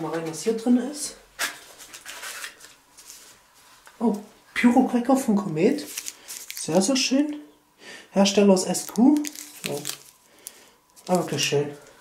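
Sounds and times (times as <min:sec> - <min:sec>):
cardboard packaging rustling: 0:01.7 - 0:03.4, 0:05.8 - 0:07.0, 0:08.7 - 0:12.0
cardboard packaging scrape: 0:01.8 - 0:03.3.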